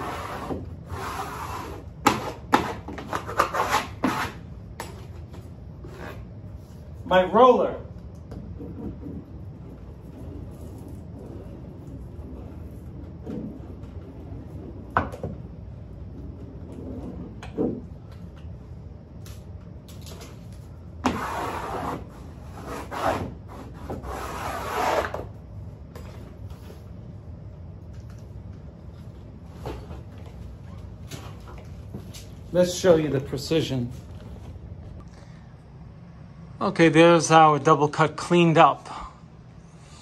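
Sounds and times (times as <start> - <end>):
seam roller rubbing on wallpaper: 0.0 - 4.4, 8.6 - 14.9, 21.0 - 25.2
steady low hum: 0.0 - 40.0.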